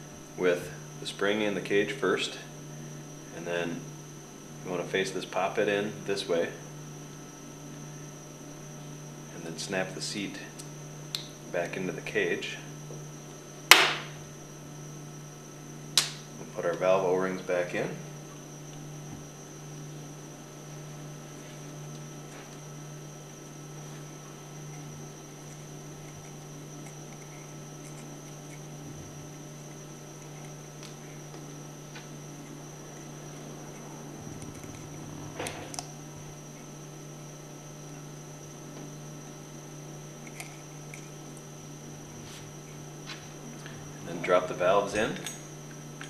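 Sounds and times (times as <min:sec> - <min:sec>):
low electrical hum: 0:00.0 - 0:46.0
thin high whine: 0:00.0 - 0:46.0.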